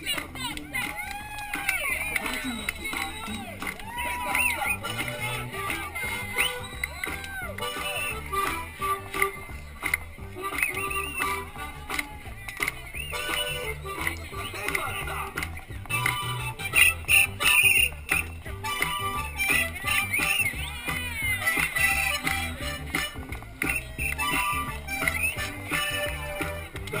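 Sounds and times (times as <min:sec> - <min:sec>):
music with pulsing bass beat: 0:00.0 - 0:27.0
voices: 0:00.0 - 0:27.0.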